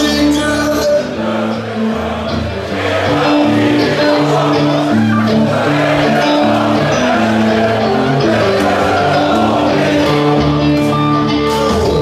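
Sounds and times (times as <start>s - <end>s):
held bass notes: 0.0s - 12.0s
live rock band playing: 0.0s - 12.0s
person singing: 0.0s - 12.0s.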